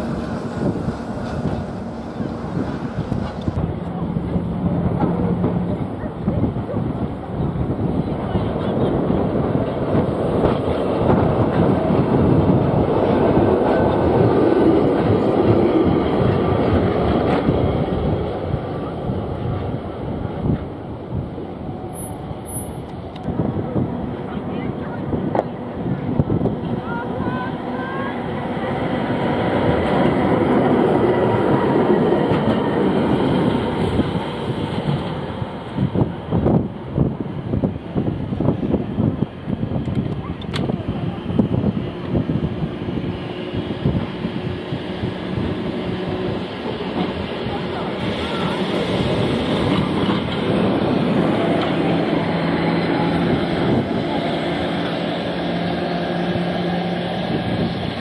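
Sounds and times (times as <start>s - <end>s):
tram wheels rumbling on rails: 0.0s - 58.0s.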